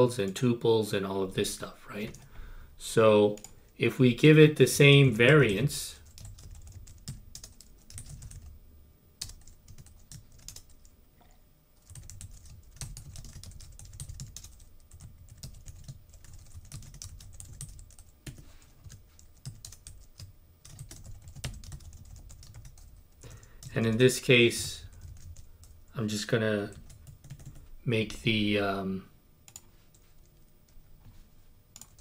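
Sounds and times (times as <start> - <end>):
typing on computer keyboard: 6.0 - 8.5, 9.2 - 10.8, 11.8 - 24.0, 24.8 - 25.8, 26.7 - 27.6, 31.8 - 32.0.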